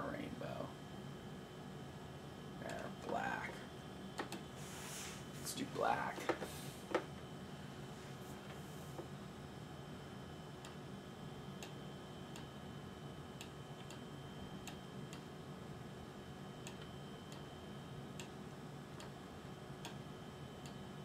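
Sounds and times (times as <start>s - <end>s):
faint hum: 0.0s - 21.0s.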